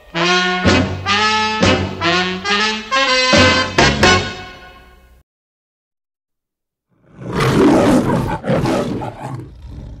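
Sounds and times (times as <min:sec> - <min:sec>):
lion growl: 0:07.0 - 0:10.0
lion roaring: 0:07.0 - 0:10.0.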